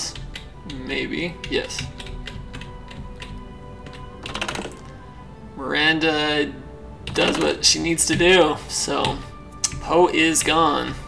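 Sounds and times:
computer keyboard keys clicking: 0.0s - 4.9s, 7.1s - 7.5s.

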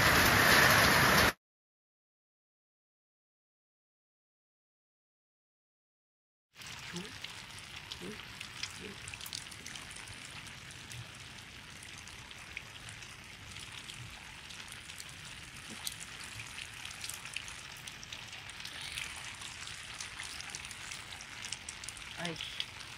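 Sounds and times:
steady rain falling: 0.0s - 1.4s, 6.6s - 22.9s
raindrops ticking: 6.6s - 22.9s.

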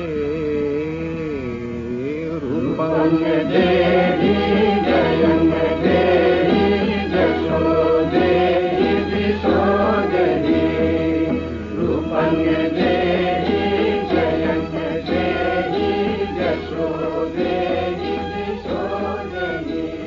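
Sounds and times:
low drone: 0.0s - 20.0s
voices chanting devotional music: 0.0s - 20.0s
instrumental accompaniment: 1.3s - 20.0s.

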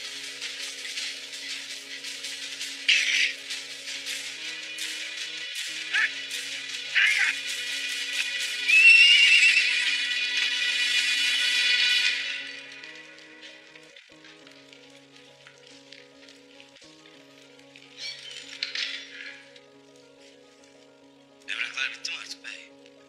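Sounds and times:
film score with low notes: 0.0s - 23.0s
horse whinny: 8.7s - 9.9s.

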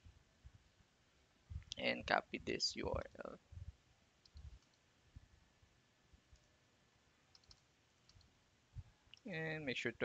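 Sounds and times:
computer mouse clicks: 4.2s - 4.8s, 7.3s - 8.3s.

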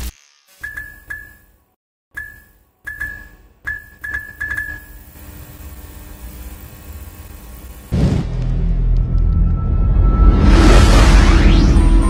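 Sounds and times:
sharp electric clicks with ring: 2.2s - 5.1s.

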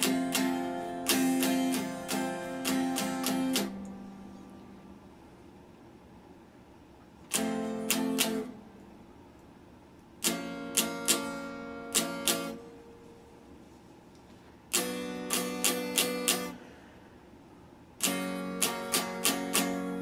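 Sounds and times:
electric guitar chords strummed: 0.0s - 4.8s, 7.3s - 8.8s, 10.2s - 13.3s, 14.7s - 16.7s, 18.0s - 20.0s.

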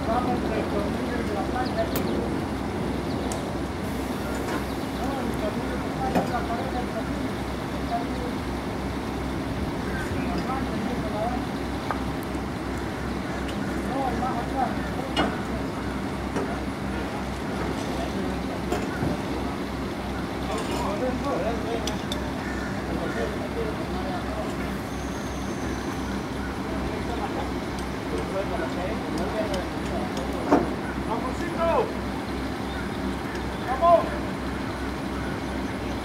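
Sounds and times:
diesel engine throbbing: 0.0s - 36.0s.

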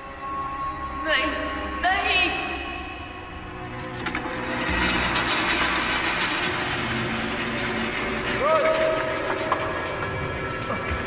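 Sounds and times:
wood cracking and creaking: 3.6s - 11.0s.

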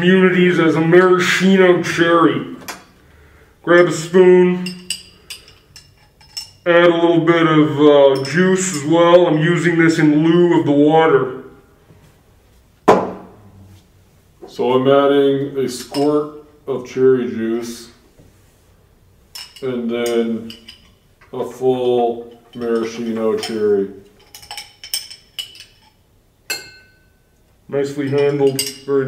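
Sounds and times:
metal spoon clinking glass jar: 4.6s - 6.6s, 8.1s - 8.9s, 19.3s - 21.0s, 22.3s - 27.2s, 28.0s - 29.0s.

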